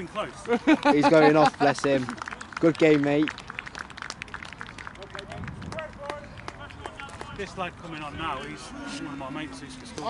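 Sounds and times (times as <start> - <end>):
scattered hand claps: 1.5 - 7.5.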